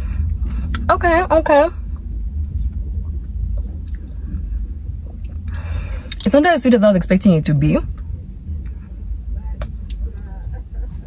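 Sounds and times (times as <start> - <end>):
breathy rush of air: 0.0 - 0.9, 1.7 - 6.3, 7.8 - 10.8
low car cabin rumble: 0.0 - 11.0.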